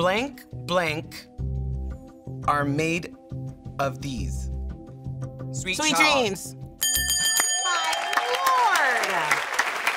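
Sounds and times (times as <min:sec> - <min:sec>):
bright bell-like chime: 0:06.8 - 0:08.9
audience cheering and applauding: 0:07.7 - 0:09.9.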